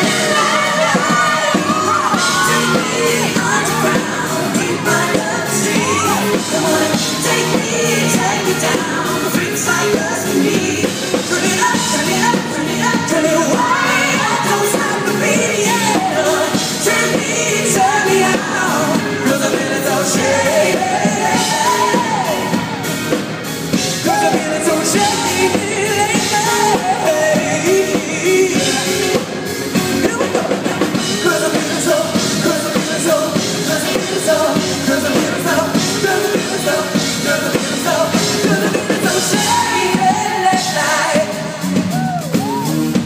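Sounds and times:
lead vocal singing: 0.0 - 43.0
pop-rock band playing: 0.0 - 43.0.

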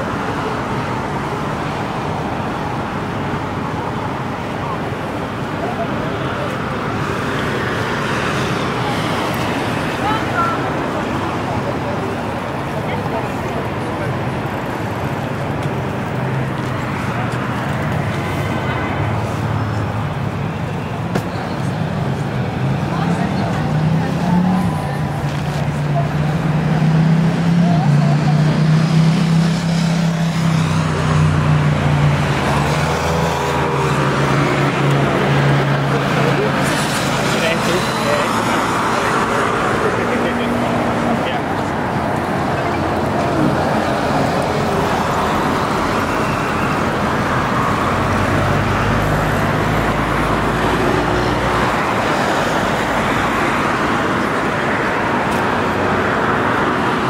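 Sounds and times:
motor vehicles passing: 0.0 - 57.0
people talking: 3.4 - 32.8, 33.6 - 53.1.

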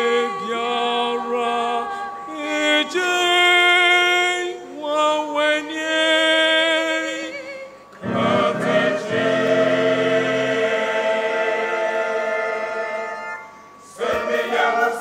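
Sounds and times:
church choir singing: 0.0 - 15.0.

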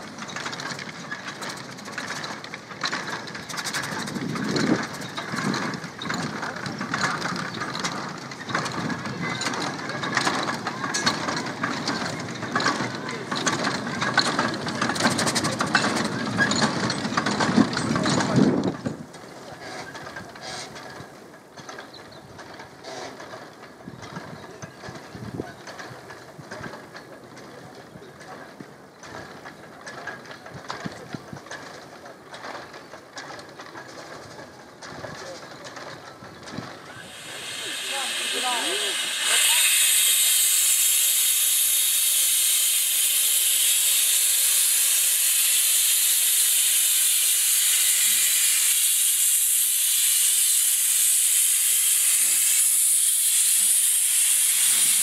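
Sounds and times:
steam locomotive running: 0.0 - 55.0.

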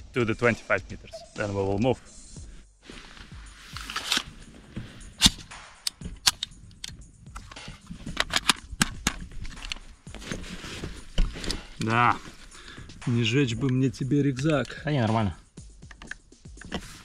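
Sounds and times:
rifle metallic clicks: 3.8 - 4.3, 5.1 - 9.8.

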